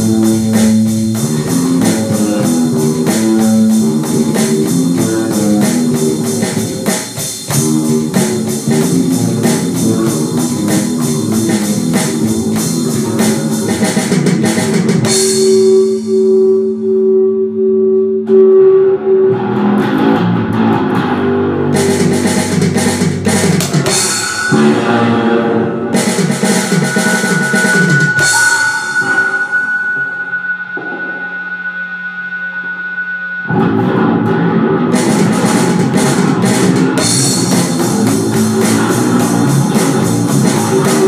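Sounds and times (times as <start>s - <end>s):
drums: 0.0s - 16.8s, 19.3s - 41.0s
black metal band playing: 0.0s - 16.9s, 18.3s - 31.9s, 32.5s - 41.0s
distorted guitars: 0.0s - 41.0s.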